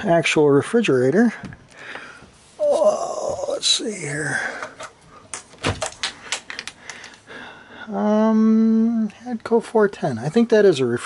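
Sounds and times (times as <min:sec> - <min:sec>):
refrigerator door clicks and knocks: 0:05.6 - 0:06.0.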